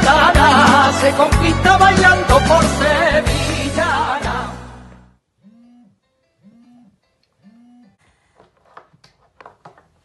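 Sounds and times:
music: 0.0 - 5.2
smartphone alarm tone: 5.5 - 8.0.

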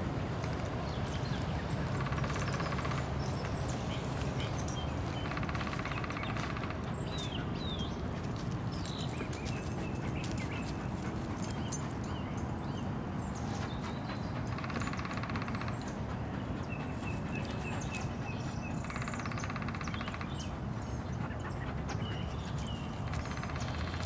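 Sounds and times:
dog panting: 1.8 - 12.8, 13.4 - 24.0.

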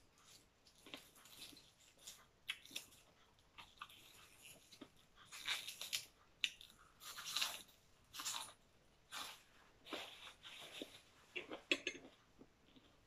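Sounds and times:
person chewing crunchy food: 0.0 - 13.0.

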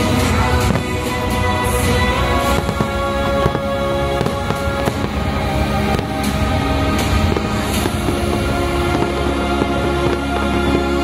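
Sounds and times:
fireworks bursting: 0.0 - 11.0
loud music with sustained notes: 0.0 - 11.0.

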